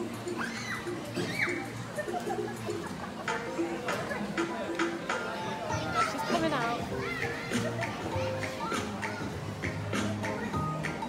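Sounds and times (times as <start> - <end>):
children calling out: 0.0 - 2.8, 5.4 - 10.7
background music: 0.0 - 11.0.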